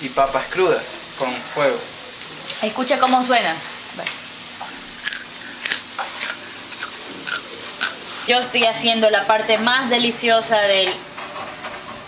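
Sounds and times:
potatoes frying in hot oil: 0:00.0 - 0:12.0.

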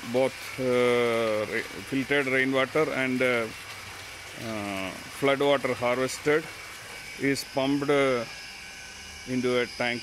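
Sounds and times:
water pouring from a pipe: 0:00.0 - 0:10.0
man speaking: 0:00.1 - 0:03.5, 0:04.4 - 0:06.5, 0:07.2 - 0:08.3, 0:09.3 - 0:10.0.

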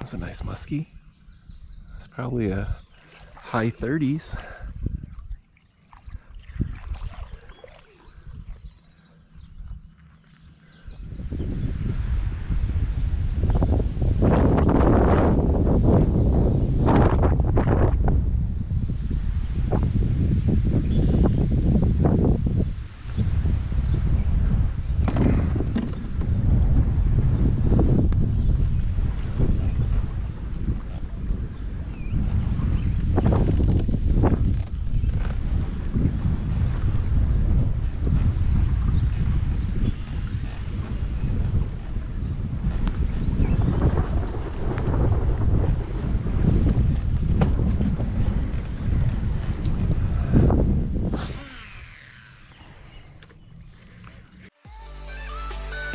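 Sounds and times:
gusty wind buffeting microphone: 0:00.0 - 0:54.5.

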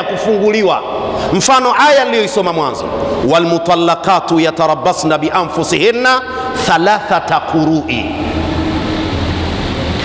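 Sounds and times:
faint hum: 0:00.0 - 0:10.0
low rumble: 0:07.9 - 0:10.0.

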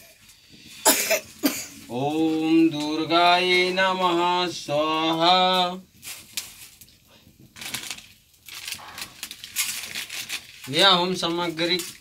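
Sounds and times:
man coughing: 0:00.8 - 0:01.8.

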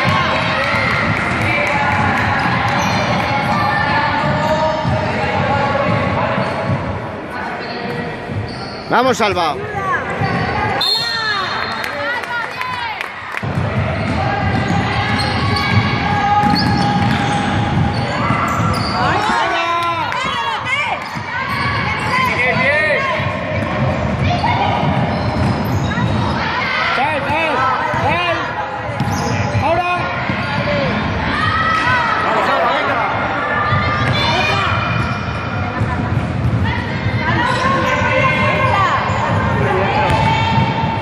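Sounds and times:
sneakers squeaking on court: 0:02.4 - 0:05.0, 0:05.9 - 0:09.3, 0:13.8 - 0:19.6, 0:23.2 - 0:26.4, 0:28.9 - 0:29.6, 0:33.7 - 0:36.6
ball bouncing: 0:13.4 - 0:19.5, 0:39.2 - 0:41.0.

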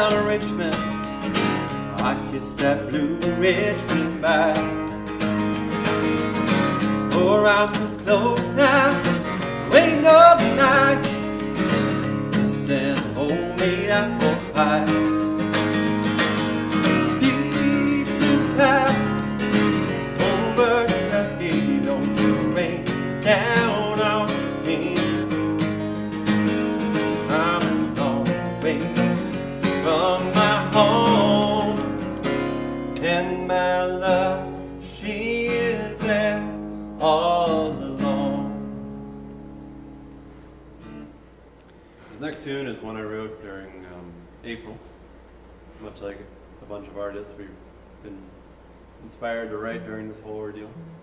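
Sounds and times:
man singing folk song: 0:00.0 - 0:15.7, 0:16.7 - 0:39.0
acoustic guitar strumming: 0:00.0 - 0:42.9, 0:49.1 - 0:51.0.

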